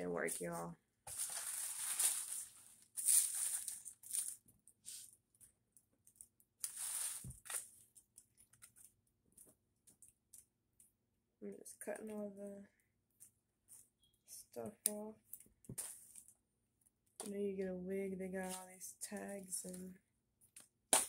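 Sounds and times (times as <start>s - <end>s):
plastic packaging crinkling: 1.1s - 5.1s, 6.1s - 8.9s.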